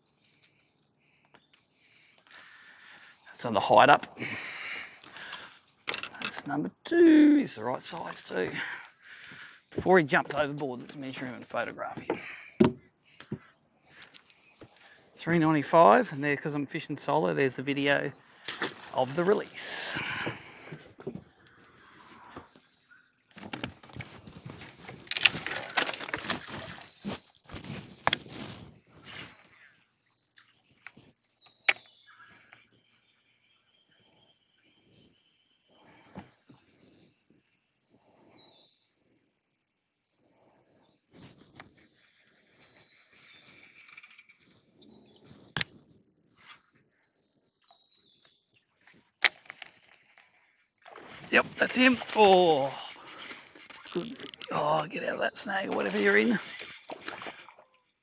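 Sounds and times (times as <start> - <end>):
birds whistling falling notes: 40.0 - 48.6, 49.7 - 53.6.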